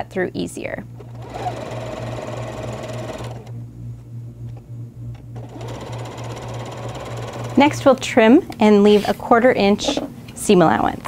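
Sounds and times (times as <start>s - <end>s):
sewing machine stitching: 1.0s - 3.5s, 5.4s - 7.8s.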